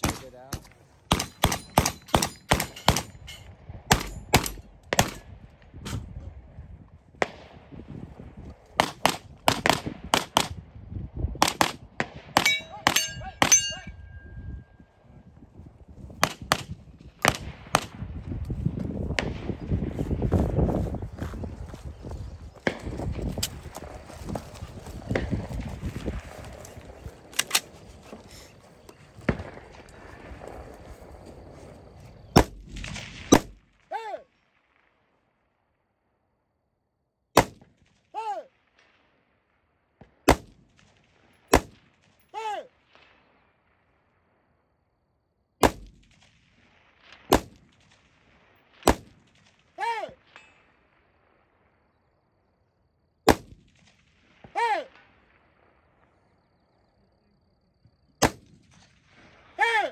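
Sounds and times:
gunshots: 0:00.0 - 0:06.1, 0:08.8 - 0:10.6, 0:11.4 - 0:14.3, 0:16.2 - 0:18.1, 0:29.1 - 0:30.8, 0:32.3 - 0:34.8, 0:37.3 - 0:38.9, 0:40.0 - 0:43.2, 0:45.6 - 0:50.8, 0:53.2 - 0:55.8, 0:58.2 - 0:59.9.

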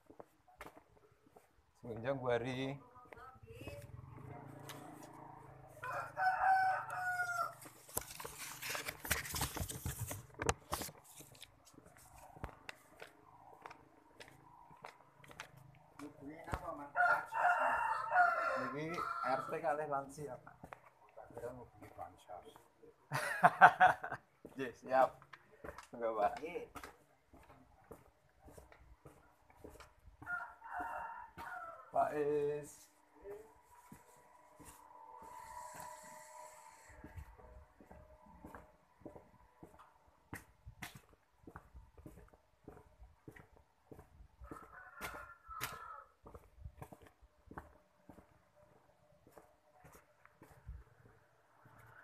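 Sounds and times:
rooster crowing: 0:05.7 - 0:07.8, 0:16.9 - 0:19.8, 0:30.2 - 0:32.3, 0:33.8 - 0:38.6, 0:43.9 - 0:46.5.

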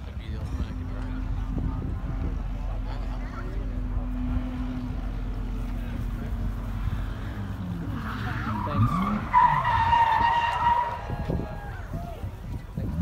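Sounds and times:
race car engine revving: 0:00.1 - 0:11.9
high-pitched tyre squeal: 0:06.7 - 0:11.8.

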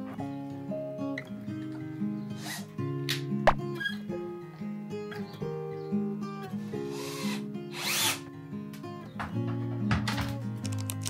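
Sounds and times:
acoustic guitar music: 0:00.0 - 0:11.0
cordless drill driving screws: 0:06.9 - 0:08.2.

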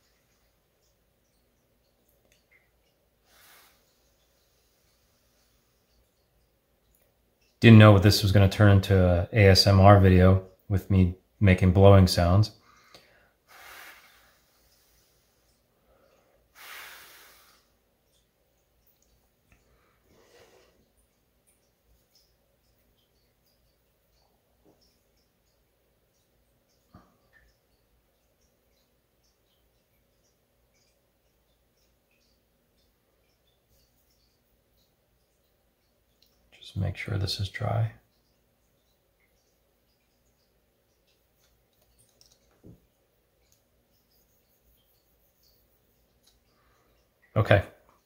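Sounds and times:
person blowing air: 0:13.5 - 0:14.3, 0:16.6 - 0:17.6.

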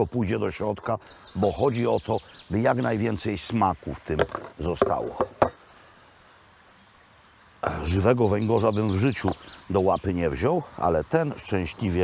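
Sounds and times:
man talking: 0:00.0 - 0:05.5, 0:07.6 - 0:12.0
small bird chirping: 0:00.4 - 0:12.0.

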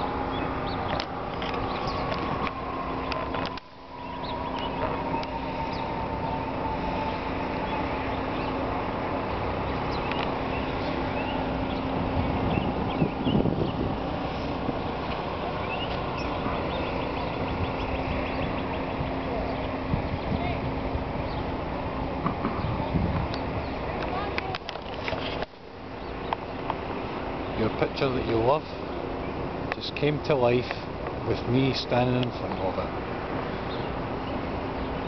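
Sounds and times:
small birds chirping: 0:00.0 - 0:21.6, 0:22.4 - 0:35.0
city traffic rumble: 0:00.0 - 0:35.0.

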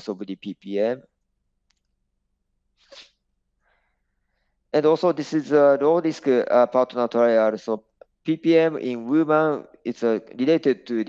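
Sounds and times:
soft breath into microphone: 0:02.8 - 0:04.7.

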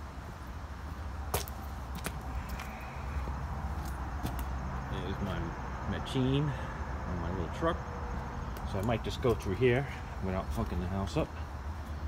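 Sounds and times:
footsteps on concrete: 0:00.2 - 0:04.6.

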